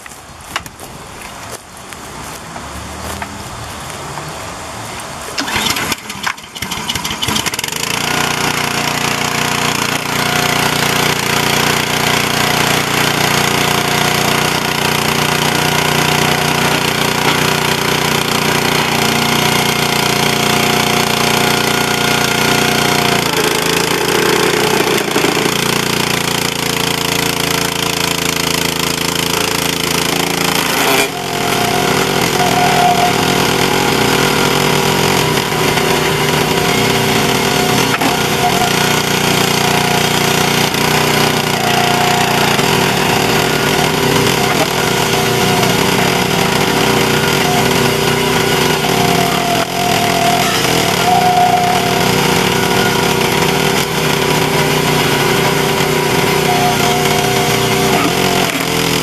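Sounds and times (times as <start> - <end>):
log splitter engine running: 0.0 - 59.0
logs splitting: 5.3 - 59.0.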